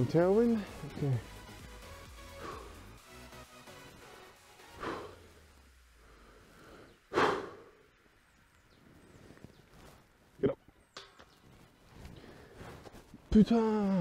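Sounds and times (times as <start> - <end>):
quiet woodland background: 0.0 - 14.0
person breathing out sharply: 4.8 - 5.4, 6.0 - 7.8.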